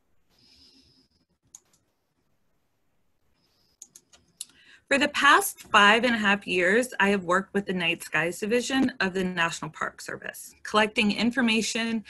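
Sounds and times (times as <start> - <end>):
faint computer clicks: 1.4 - 1.9, 3.7 - 4.6.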